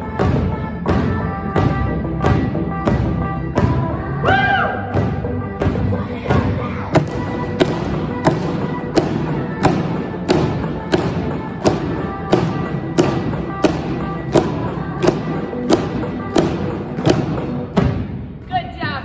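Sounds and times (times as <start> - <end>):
pop song with steady beat: 0.1 - 17.9
drumsticks thumping on exercise balls: 4.9 - 18.2.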